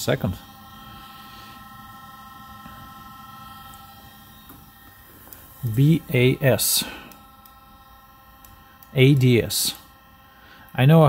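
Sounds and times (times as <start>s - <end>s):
faint steady hum: 0.0s - 11.0s
high-pitched whining tones: 0.0s - 11.0s.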